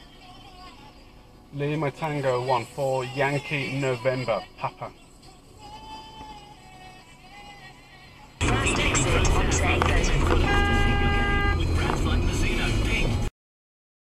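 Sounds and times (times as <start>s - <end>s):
in-car driving noise: 5.0s - 13.3s
car horn blast: 8.4s - 12.1s.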